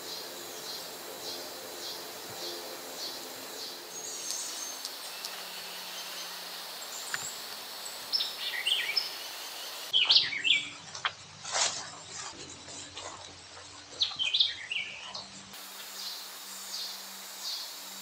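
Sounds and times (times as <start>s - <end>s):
birds chirping: 0.0s - 10.8s, 14.0s - 15.3s.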